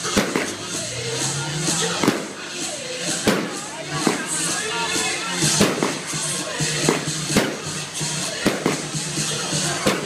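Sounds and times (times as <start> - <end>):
fireworks bangs: 0.0 - 0.6, 1.9 - 2.4, 3.2 - 4.5, 5.5 - 6.1, 6.8 - 8.9
background music: 0.0 - 10.0.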